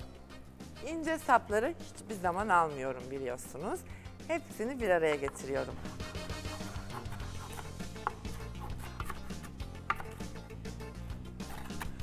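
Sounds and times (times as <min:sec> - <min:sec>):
knife chopping on wooden board: 0:05.1 - 0:10.4, 0:11.4 - 0:12.0.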